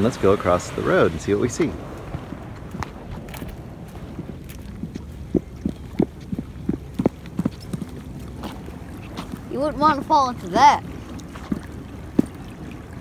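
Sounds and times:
steady low rumble: 0.0s - 13.0s
footsteps on asphalt: 1.9s - 9.4s.

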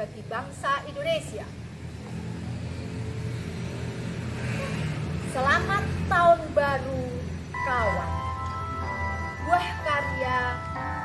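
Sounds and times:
engine rumbling: 0.0s - 11.0s.

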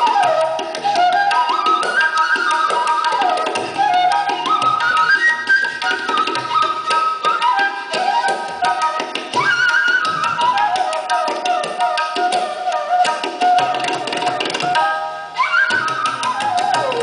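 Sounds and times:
bamboo flute melody: 0.0s - 17.0s
rapid tabla strokes: 0.0s - 17.0s.

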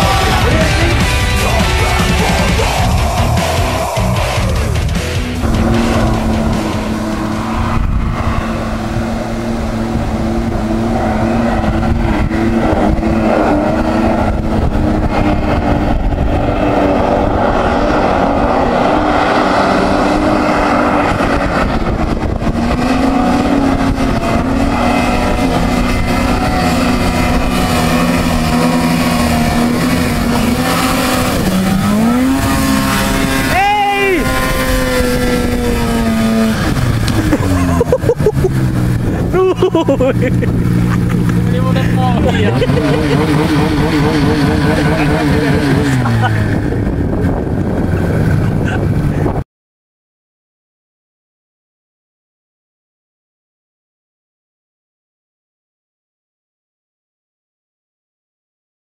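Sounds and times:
snowmobile engine revving: 0.0s - 49.4s.

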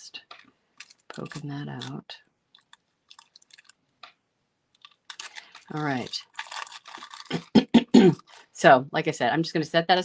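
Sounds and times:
paper clicks and crackles: 0.3s - 4.2s, 4.8s - 7.5s.

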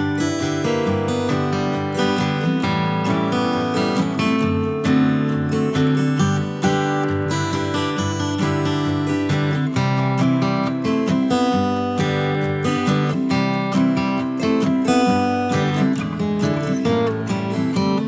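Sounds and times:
acoustic guitar strumming chords: 0.0s - 18.0s.

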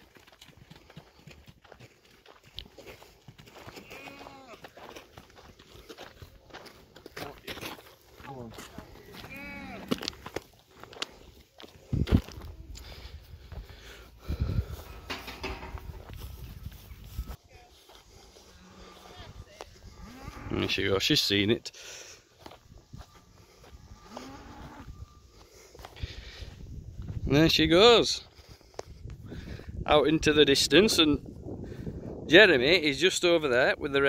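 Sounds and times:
footsteps on gravel and grass: 0.0s - 29.4s
cattle calling: 3.7s - 4.6s, 8.8s - 10.1s, 18.3s - 20.8s, 22.9s - 25.3s.

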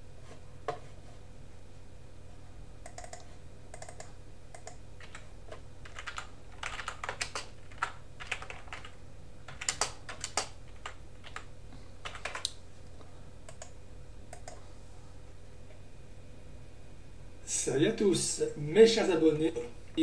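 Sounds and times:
low electrical hum: 0.0s - 20.0s
keyboard typing clicks: 2.8s - 12.6s, 13.5s - 14.6s.

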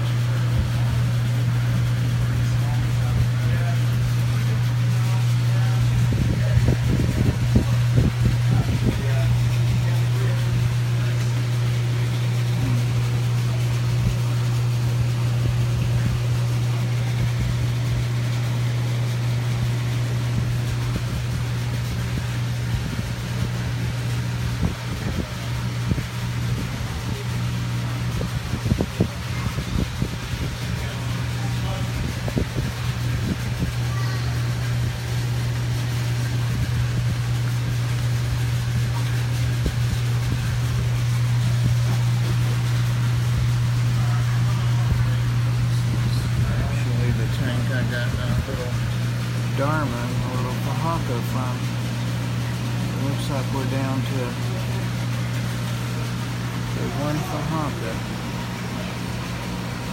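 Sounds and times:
aquarium pumps humming: 0.0s - 59.9s.

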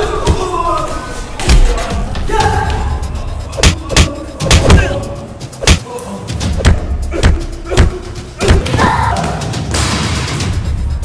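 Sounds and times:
action soundtrack music: 0.0s - 11.0s.

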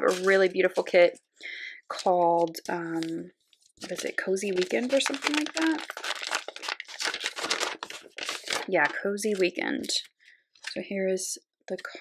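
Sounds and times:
plastic sleeves crinkling: 0.0s - 1.0s, 1.9s - 10.8s.

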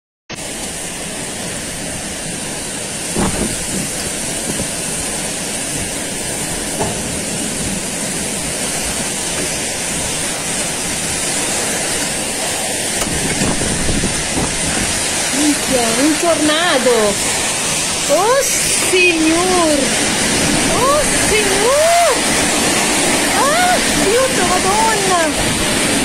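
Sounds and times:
strong wind: 0.4s - 26.0s
torrential rain and hail: 0.4s - 26.0s.

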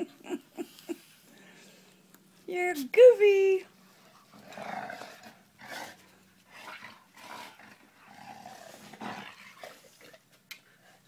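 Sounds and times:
dogs growling while play-fighting: 4.1s - 10.2s.

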